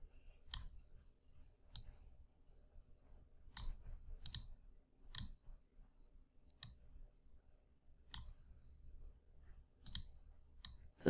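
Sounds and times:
computer mouse clicks: 0:00.4 - 0:00.9, 0:01.7 - 0:02.0, 0:03.5 - 0:05.4, 0:06.4 - 0:06.8, 0:08.0 - 0:08.4, 0:09.8 - 0:10.9.

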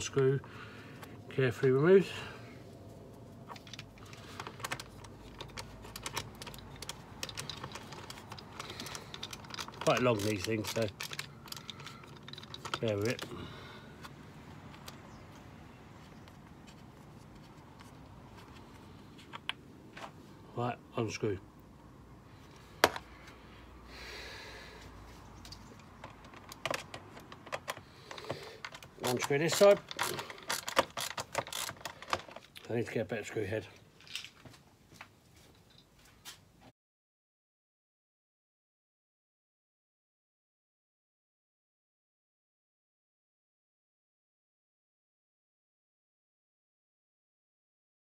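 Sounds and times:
screwdriver clicking on plastic: 0:04.4 - 0:13.3, 0:25.9 - 0:32.4
screwdriver turning screw clicks: 0:25.5 - 0:32.4.

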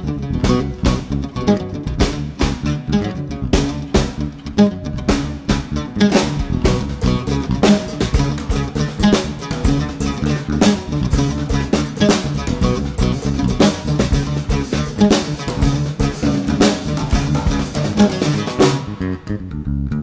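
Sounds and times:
drum kit groove: 0:00.0 - 0:19.1
low plucked string lines: 0:00.0 - 0:20.0.

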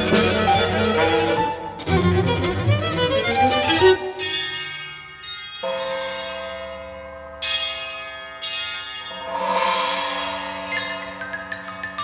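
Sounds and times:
bell-like struck tones: 0:04.0 - 0:12.0.

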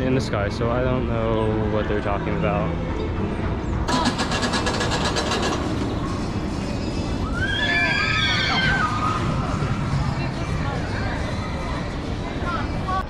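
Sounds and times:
roller coaster train clatter: 0:01.5 - 0:13.0
riders screaming: 0:07.2 - 0:09.4.

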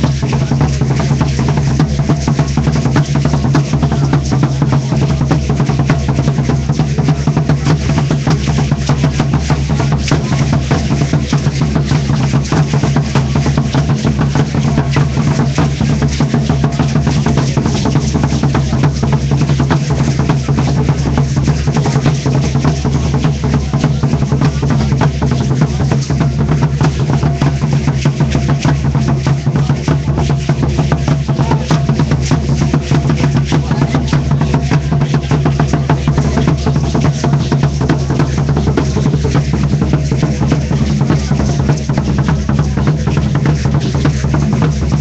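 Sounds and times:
loud steady drumming: 0:00.0 - 0:45.0.

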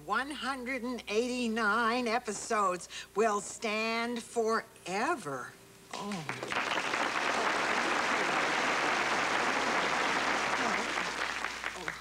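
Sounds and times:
audience applauding: 0:06.1 - 0:12.0.

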